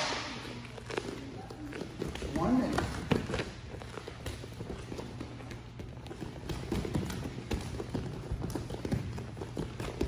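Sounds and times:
bare feet on foam mat: 0.0 - 10.0.

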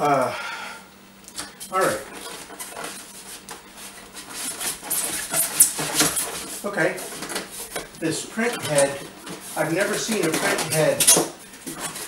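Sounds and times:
hands scraping printer print head: 1.9 - 12.0.

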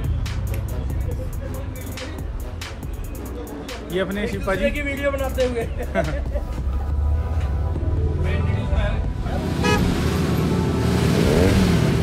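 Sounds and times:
background music: 0.0 - 12.0
road traffic: 0.0 - 12.0
passing engines: 6.9 - 12.0
vehicle horn toot: 9.6 - 10.0.

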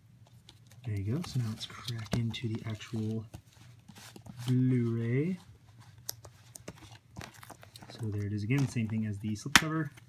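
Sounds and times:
plastic case rustling and scraping: 0.3 - 9.4.

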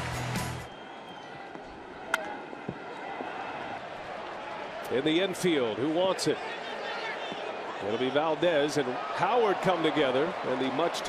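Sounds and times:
ballpark crowd noise: 0.0 - 11.0.

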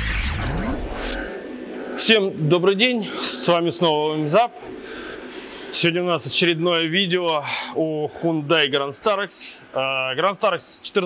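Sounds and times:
car engine revving: 0.0 - 1.3
whooshes: 0.0 - 3.5
heavy low rumble: 0.0 - 7.1.

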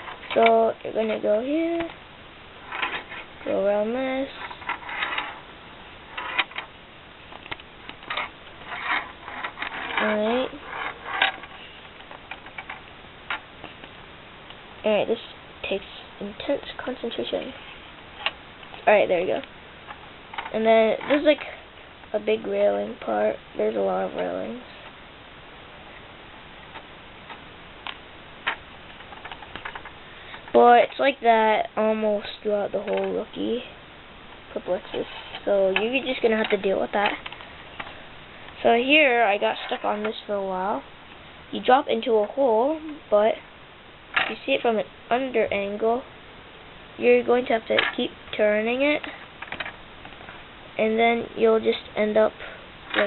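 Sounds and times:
steel ball rolling on plastic tracks: 2.6 - 3.3, 4.3 - 5.4, 6.1 - 6.7, 8.0 - 12.8.

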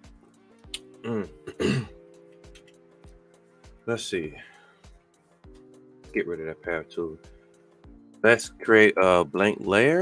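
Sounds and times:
quiet background music: 0.0 - 10.0
man clearing throat: 1.0 - 2.0.

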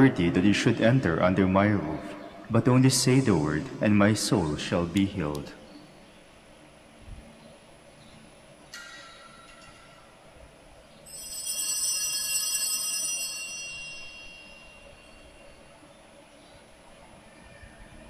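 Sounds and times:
high-pitched church bell ringing: 11.1 - 15.8.

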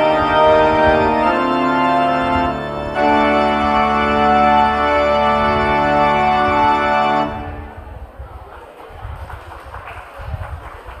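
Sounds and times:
faint indistinct murmur: 7.3 - 11.0.

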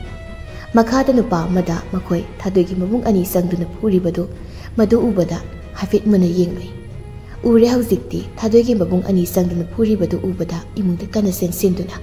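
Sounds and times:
soft background music: 0.0 - 12.0
woman speaking: 0.6 - 12.0.

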